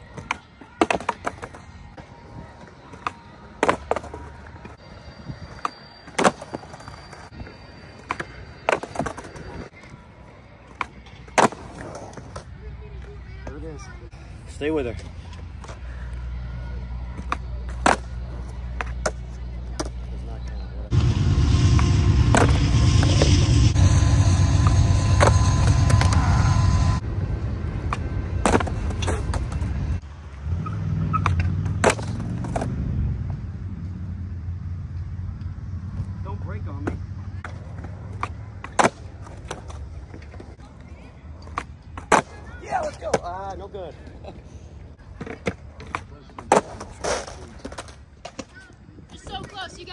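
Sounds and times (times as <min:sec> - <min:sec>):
skateboard wheels rolling on concrete: 0:00.0 - 0:21.0, 0:21.7 - 0:49.9.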